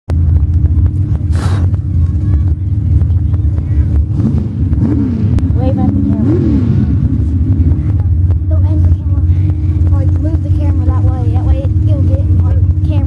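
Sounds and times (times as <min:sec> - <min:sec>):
truck engine revving: 0:00.1 - 0:13.0
short hiss: 0:01.3 - 0:01.7.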